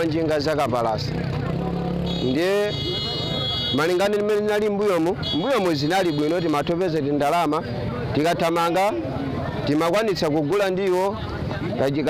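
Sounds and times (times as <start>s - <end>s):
vehicle engine running: 0.0s - 5.1s
man speaking: 3.7s - 9.0s.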